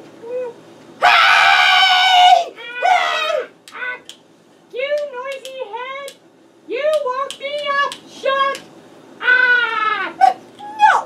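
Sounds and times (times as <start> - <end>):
woman screaming: 1.0 - 4.0, 9.2 - 11.0.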